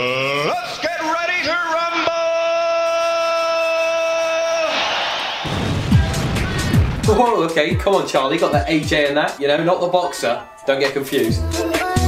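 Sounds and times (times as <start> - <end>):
crowd cheering: 1.9 - 7.0
hip-hop beat with bass kicks: 5.7 - 9.2, 10.9 - 12.0.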